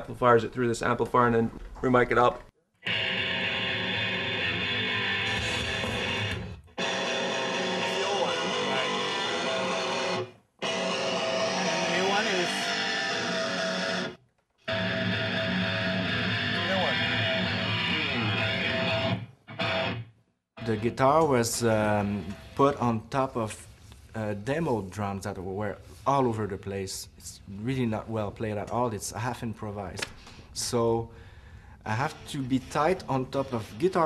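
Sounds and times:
distorted electric guitar chords: 2.8 - 21.0.

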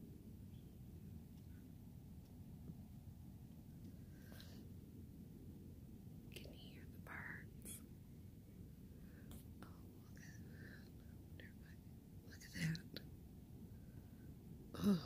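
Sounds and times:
person whispering: 6.3 - 7.8, 11.4 - 13.0.

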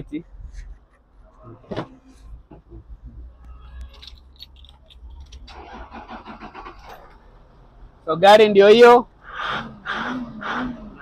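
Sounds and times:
engine cranking: 3.8 - 7.4.

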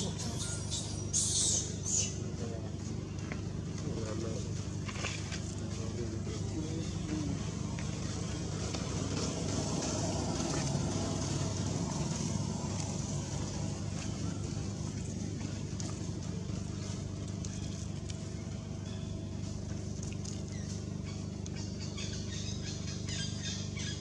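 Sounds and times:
outdoor background noise: 0.0 - 24.0
steady low hum: 0.0 - 24.0.

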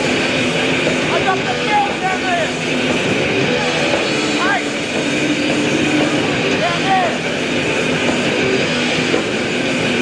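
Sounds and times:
distorted electric guitars: 0.0 - 10.0
drums: 0.0 - 10.0
sliding high guitar notes: 0.0 - 10.0.

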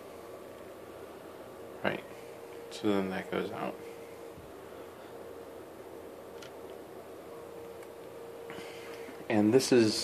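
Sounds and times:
faint electrical hum: 0.0 - 10.0
low room hiss: 0.0 - 10.0.

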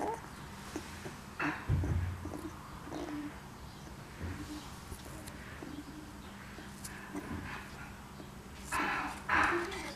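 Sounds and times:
puppies whimpering and grunting: 0.0 - 9.9
soft low bump: 1.5 - 2.6.

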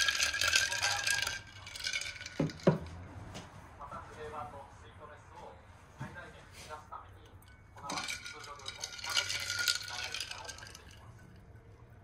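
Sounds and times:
ice cubes clinking against glass: 0.0 - 2.9, 7.8 - 11.3.

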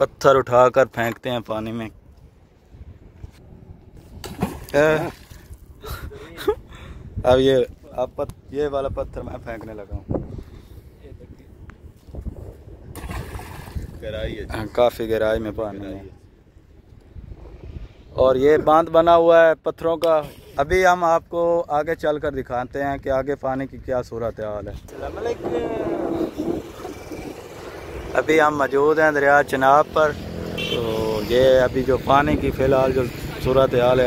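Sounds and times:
wind rumble on microphone: 1.9 - 4.7, 5.3 - 19.0, 22.0 - 28.2, 31.4 - 34.0
stone splashing into river: 4.2 - 5.4, 13.0 - 14.0
vehicle engine passing: 24.9 - 34.0.

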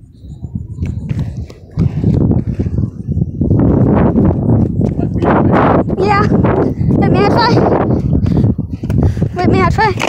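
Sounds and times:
skateboard wheels rumbling on concrete: 0.6 - 10.0.

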